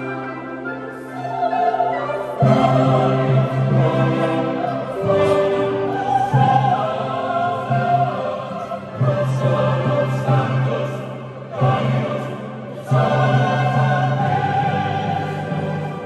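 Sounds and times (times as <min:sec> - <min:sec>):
mixed choir singing: 0:00.0 - 0:16.0.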